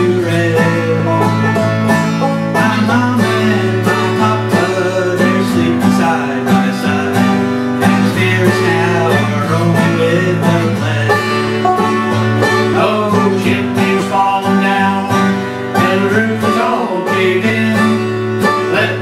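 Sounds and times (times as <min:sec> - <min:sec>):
acoustic guitar: 0:00.0 - 0:19.0
banjo plucking: 0:00.0 - 0:19.0.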